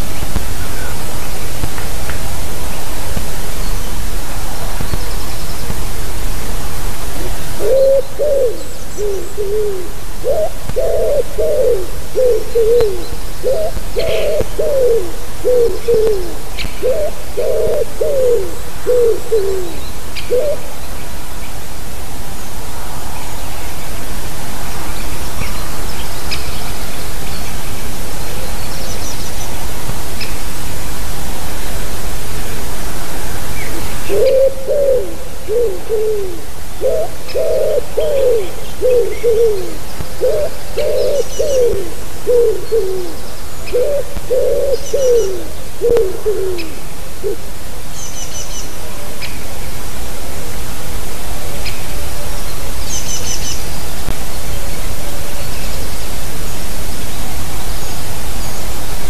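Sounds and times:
steady hiss: 0:00.0 - 0:59.0
wood pigeon cooing: 0:07.2 - 0:20.7, 0:34.0 - 0:47.5.

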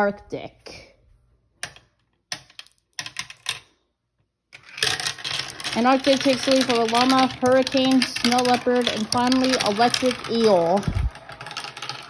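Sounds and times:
marbles clicking on plastic: 0:01.6 - 0:03.8, 0:04.5 - 0:12.0
marbles rattling down plastic track: 0:04.6 - 0:12.0.

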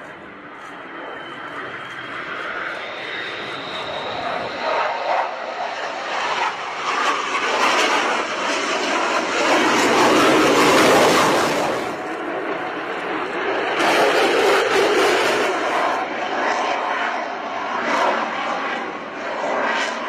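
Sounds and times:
faint high jet whine: 0:00.0 - 0:20.0
jet noise: 0:00.0 - 0:20.0.

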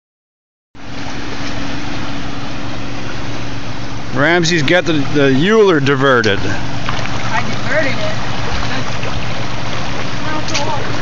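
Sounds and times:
rushing water: 0:00.8 - 0:11.0
small engine droning: 0:00.8 - 0:11.0.

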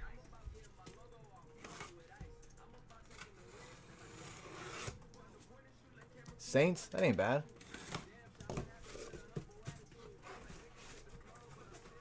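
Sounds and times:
blade cutting tape on cardboard: 0:03.1 - 0:05.0, 0:07.6 - 0:08.1.

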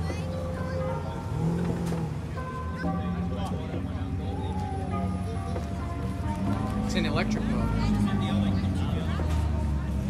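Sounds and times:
people talking: 0:00.0 - 0:01.7, 0:02.4 - 0:10.0
background music: 0:00.0 - 0:10.0
car engine pulling away: 0:00.0 - 0:10.0.

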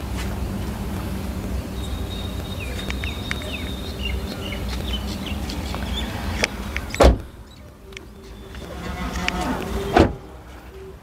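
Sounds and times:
low outdoor rumble: 0:00.0 - 0:11.0
small birds chirping: 0:00.3 - 0:08.8
car door shutting: 0:06.9 - 0:07.3, 0:08.7 - 0:10.3.

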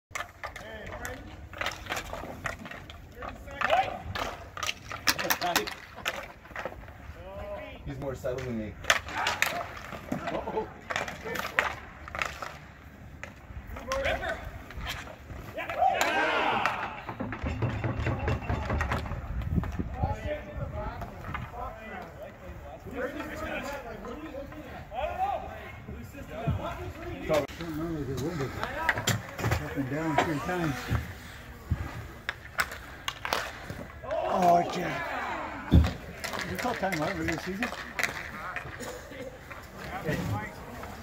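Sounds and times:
hockey sticks scraping on ice: 0:00.1 - 0:07.3, 0:07.9 - 0:25.2, 0:25.9 - 0:41.0.

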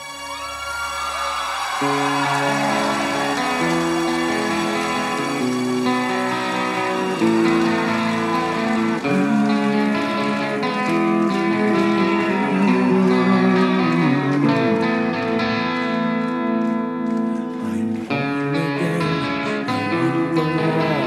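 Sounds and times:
electric guitar melody: 0:01.6 - 0:21.0.

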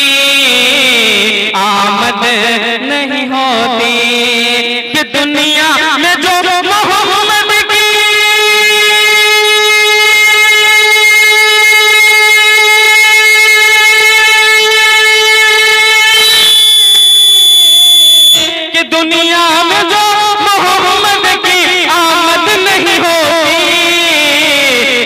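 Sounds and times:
man singing long note: 0:00.0 - 0:16.8, 0:18.4 - 0:25.0
shrill high tone: 0:07.1 - 0:18.7.

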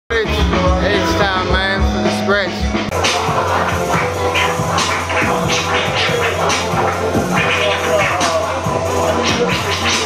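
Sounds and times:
hip-hop beat with bass: 0:00.1 - 0:10.0
turntable scratching: 0:00.9 - 0:10.0.

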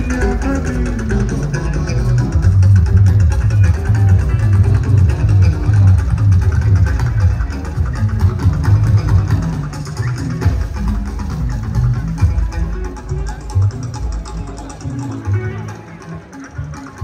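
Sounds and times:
band music with electric guitars: 0:00.0 - 0:17.0
dense percussion rhythm: 0:00.0 - 0:17.0.

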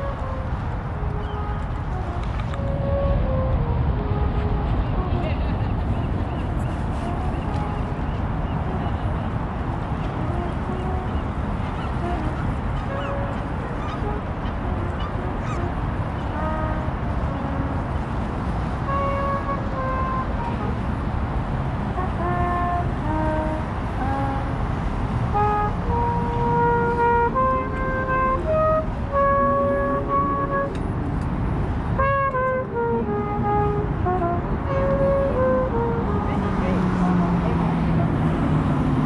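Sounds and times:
trumpet playing slow melody: 0:00.0 - 0:05.2, 0:06.4 - 0:08.9, 0:09.7 - 0:31.0, 0:31.8 - 0:36.7
low rumble of city traffic: 0:00.0 - 0:39.0.

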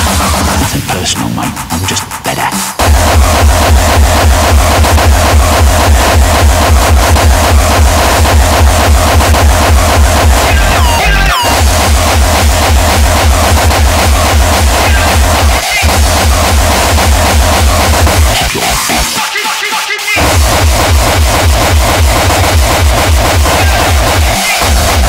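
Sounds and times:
hardcore electronic music: 0:00.0 - 0:25.0
heavy kick drum: 0:01.8 - 0:19.3, 0:20.2 - 0:25.0.

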